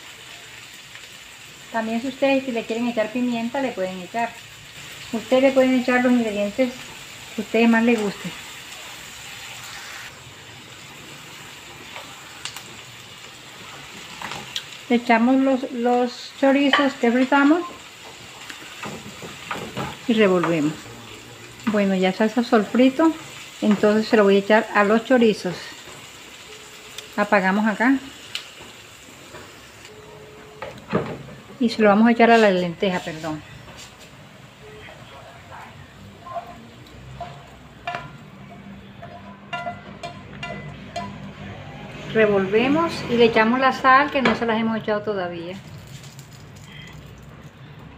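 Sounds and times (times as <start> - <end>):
food sizzling in a frying pan: 0.0 - 47.7
spatula scraping pan: 36.2 - 43.2.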